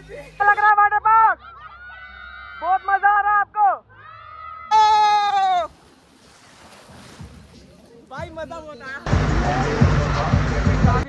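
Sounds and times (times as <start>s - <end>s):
rushing water: 5.3s - 11.0s.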